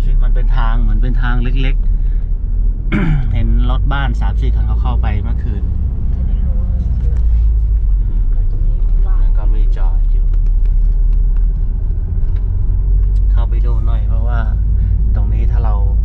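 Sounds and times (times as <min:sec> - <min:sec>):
engine and road rumble: 0:00.0 - 0:16.0.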